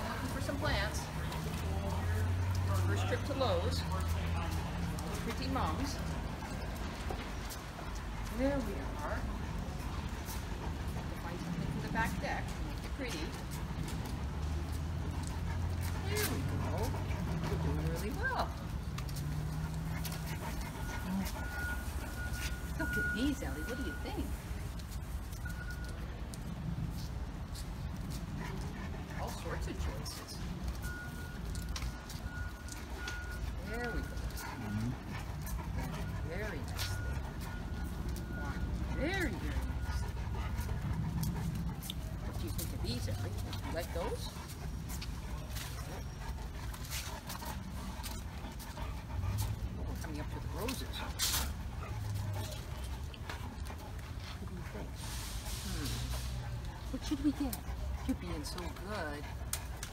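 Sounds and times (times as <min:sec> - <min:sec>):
dog paws walking: 0:00.0 - 0:59.9
footsteps on concrete: 0:31.1 - 0:55.8.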